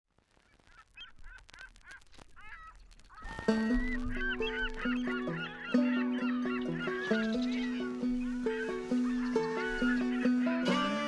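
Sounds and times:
birds calling faintly: 0:00.3 - 0:11.0.

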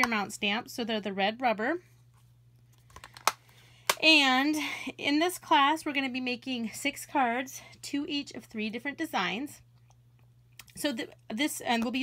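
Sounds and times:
plastic case clicks and taps: 0:02.9 - 0:04.0.

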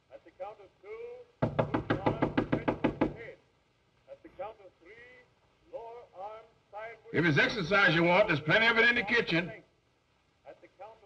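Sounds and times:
rapid thumping behind a door: 0:01.4 - 0:03.3.

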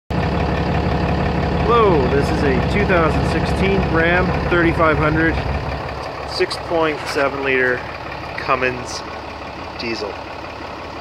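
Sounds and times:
diesel engine idling: 0:00.1 - 0:11.0
man's voice: 0:01.6 - 0:05.5, 0:06.3 - 0:09.1, 0:09.8 - 0:10.2.

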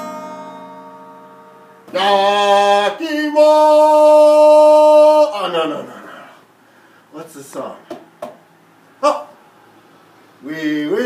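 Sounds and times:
acoustic guitar chord ringing: 0:00.0 - 0:06.0.

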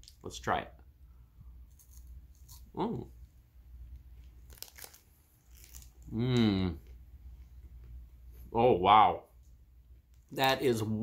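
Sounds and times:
chewing crunching: 0:04.2 - 0:07.0
wrapper crinkling: 0:04.3 - 0:06.1.

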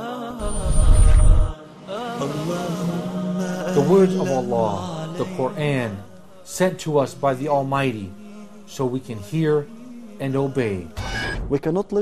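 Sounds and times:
vocal chant: 0:00.0 - 0:11.6
deep rumbling swell: 0:00.4 - 0:01.6.

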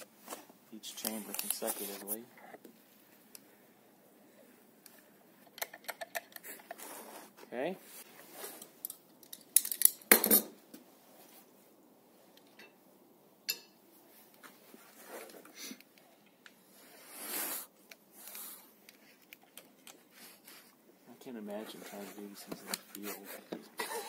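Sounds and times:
brief rustle: 0:00.3 - 0:02.2.

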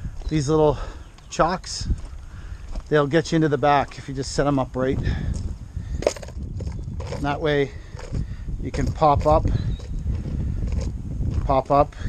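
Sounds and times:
footsteps on gravel: 0:00.0 - 0:11.9
wind rumble on microphone: 0:00.0 - 0:12.0.

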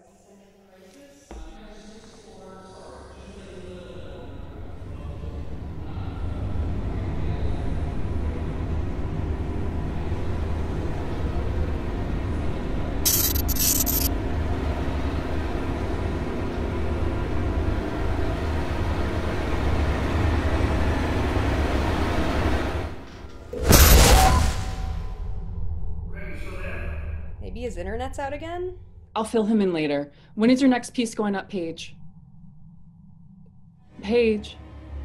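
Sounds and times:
low rumbling horror score drone: 0:02.8 - 0:13.0, 0:14.1 - 0:23.6, 0:24.4 - 0:35.0
static-like hiss: 0:13.1 - 0:14.1.

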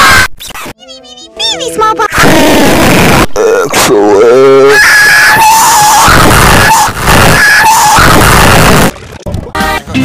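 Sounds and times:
distorted screaming: 0:02.2 - 0:08.9.

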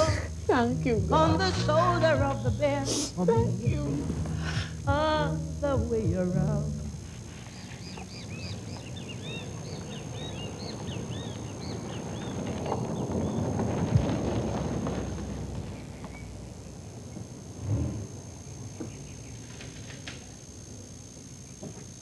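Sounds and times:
birds chirping: 0:07.4 - 0:14.5
car driving past: 0:09.6 - 0:16.6.

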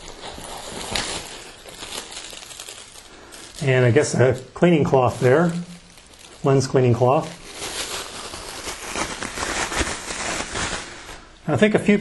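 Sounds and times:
plastic packaging crinkling: 0:00.0 - 0:11.3.

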